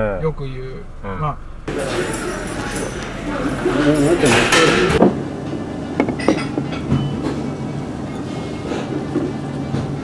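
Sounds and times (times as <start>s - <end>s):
low room hum: 0.0s - 10.0s
clinks and knocks: 1.7s - 5.1s.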